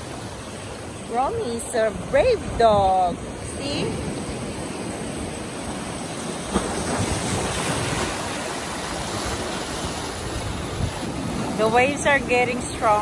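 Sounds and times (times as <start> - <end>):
waves breaking on rocky shore: 0.0 - 13.0.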